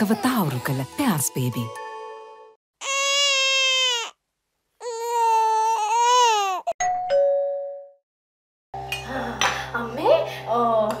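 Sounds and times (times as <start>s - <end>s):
soft background music: 0.0s - 2.5s.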